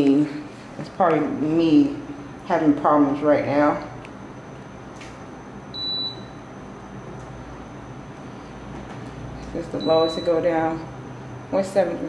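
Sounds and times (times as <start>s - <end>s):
air conditioner hissing and humming: 0.0s - 12.0s
air conditioner beep: 1.4s - 12.0s.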